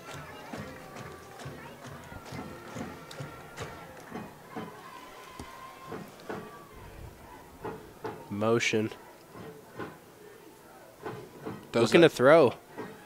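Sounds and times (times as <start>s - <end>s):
distant crowd voices: 0.0s - 13.0s
faint music: 0.0s - 13.0s.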